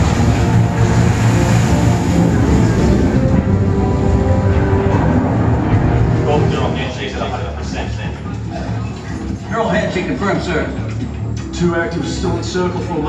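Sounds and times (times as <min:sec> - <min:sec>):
held music notes: 0:00.0 - 0:12.6
low rumble of film effects: 0:00.0 - 0:13.0.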